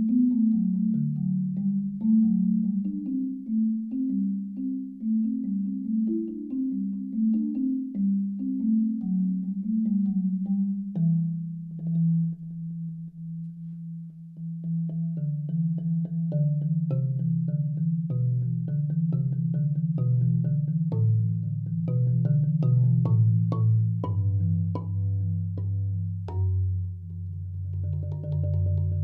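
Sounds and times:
solo marimba piece: 0:00.0 - 0:29.0.

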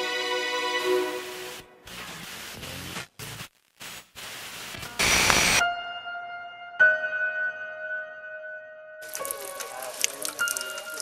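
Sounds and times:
hissing static: 0:01.3 - 0:05.6.

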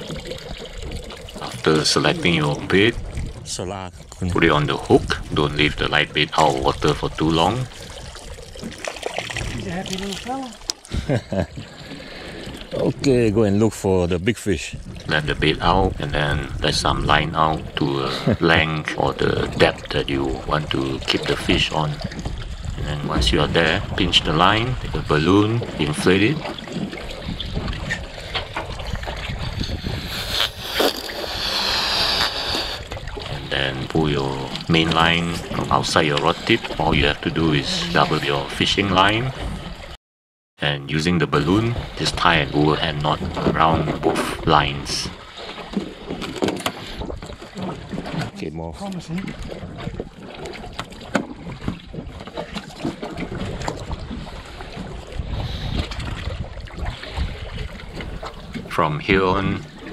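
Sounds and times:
wind on microphone: 0:00.0 - 0:11.7, 0:14.7 - 0:39.8, 0:49.1 - 0:59.9
water lapping at hull: 0:00.0 - 0:40.0, 0:40.6 - 0:59.9
breath blowing up balloon: 0:29.6 - 0:32.9.

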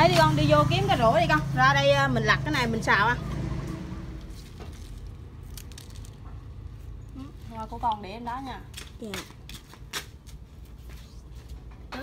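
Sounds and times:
plant stems clicking: 0:04.5 - 0:06.7, 0:08.7 - 0:10.4.

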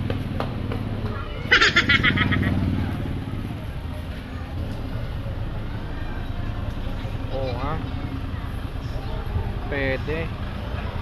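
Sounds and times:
motor vehicle engine rumble: 0:00.0 - 0:11.0.

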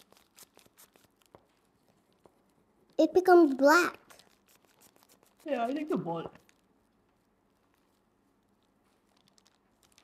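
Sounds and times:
plastic bag crinkling: 0:00.0 - 0:02.2, 0:04.0 - 0:10.0.

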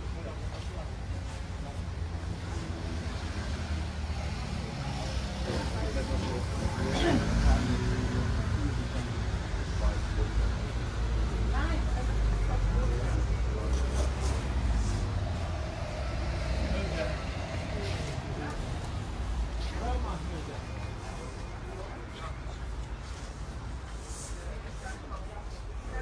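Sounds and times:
faint voices of passers-by: 0:00.0 - 0:26.0
low traffic rumble: 0:00.0 - 0:26.0
people talking: 0:04.0 - 0:23.3.

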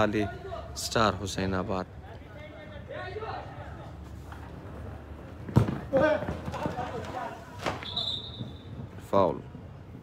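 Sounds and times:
referee's whistle: 0:07.7 - 0:08.8.

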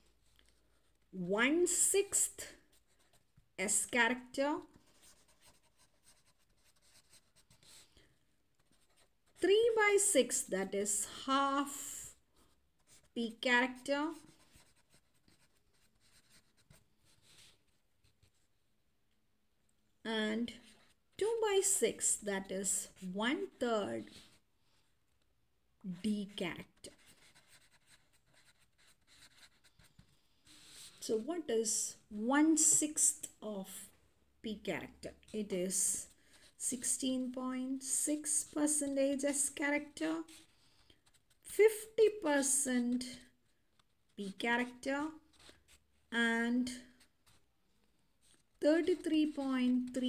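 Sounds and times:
marker pen scratching on paper: 0:00.0 - 0:18.5, 0:20.4 - 0:25.2, 0:25.9 - 0:31.8, 0:32.4 - 0:33.8, 0:35.0 - 0:50.0
marker writing on paper: 0:01.6 - 0:07.9, 0:08.6 - 0:11.9, 0:12.8 - 0:18.4, 0:25.9 - 0:31.3, 0:47.0 - 0:47.5.

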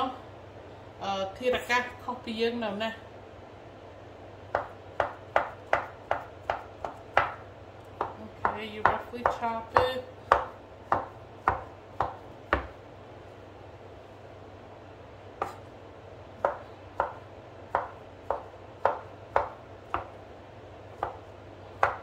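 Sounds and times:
knife chopping on wooden board: 0:04.5 - 0:07.4, 0:08.0 - 0:12.8, 0:15.4 - 0:15.7, 0:16.4 - 0:20.2, 0:21.0 - 0:22.0.

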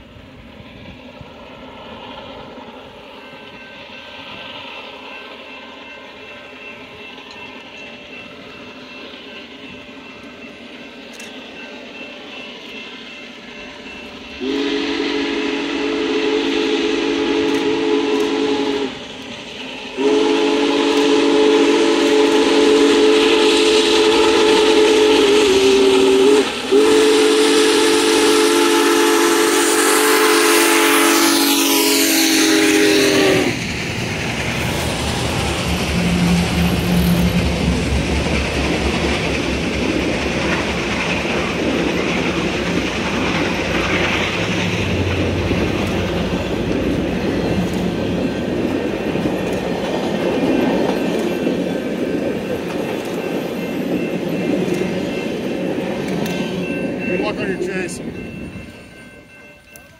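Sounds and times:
train rumbling past: 0:00.0 - 0:59.9
steam whistle blasts: 0:14.4 - 0:19.0, 0:20.0 - 0:33.6
wheels clacking over rail joints: 0:33.5 - 0:57.2.

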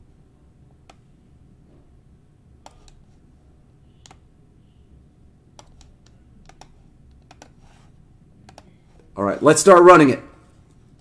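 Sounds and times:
computer keyboard typing: 0:02.6 - 0:03.0, 0:04.0 - 0:04.3, 0:05.5 - 0:07.8, 0:08.4 - 0:08.8.

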